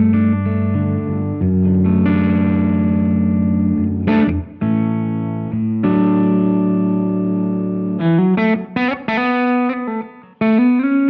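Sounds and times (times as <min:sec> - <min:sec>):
overdriven electric guitar strumming: 0:00.0 - 0:11.0.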